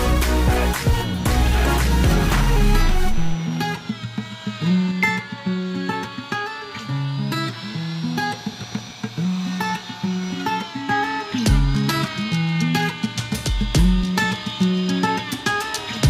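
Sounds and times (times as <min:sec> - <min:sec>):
bass line: 0:00.0 - 0:03.4, 0:11.5 - 0:11.8, 0:13.8 - 0:14.1
plucked guitar melody: 0:00.0 - 0:16.0.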